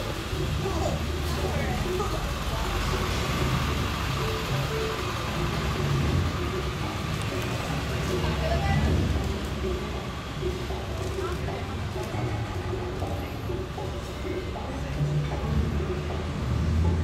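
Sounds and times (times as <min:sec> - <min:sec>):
background music: 0:00.0 - 0:17.0
car traffic rumbling: 0:00.0 - 0:17.0
voices of passers-by: 0:00.0 - 0:17.0.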